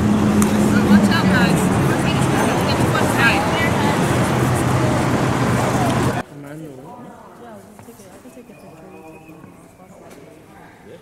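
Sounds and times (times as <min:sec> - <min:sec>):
indistinct background voices: 0:00.0 - 0:06.2.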